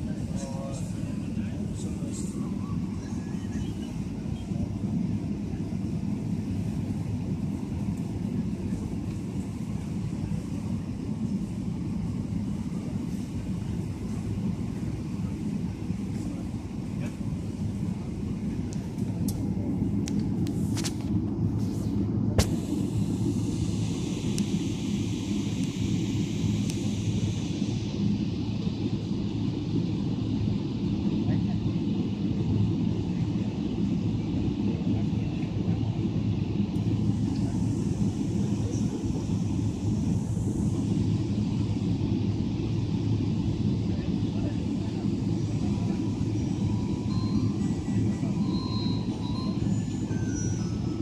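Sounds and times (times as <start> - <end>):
cabin air hiss: 0.0 - 51.0
low engine rumble in cabin: 0.0 - 51.0.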